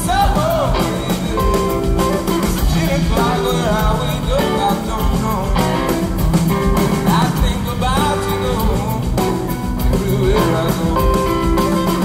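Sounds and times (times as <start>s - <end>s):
bass guitar: 0.0s - 12.0s
drum kit beat: 0.0s - 12.0s
electric guitars: 0.0s - 12.0s
man singing: 0.0s - 12.0s.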